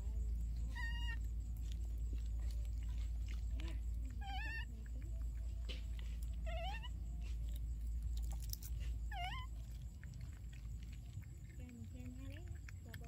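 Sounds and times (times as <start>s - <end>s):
baby monkey coo calls: 3.9s - 5.0s, 6.4s - 7.1s, 9.1s - 10.0s.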